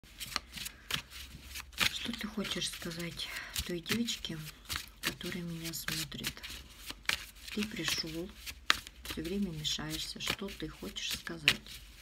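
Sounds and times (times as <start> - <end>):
cards sliding in shuffle: 0.1 - 12.0.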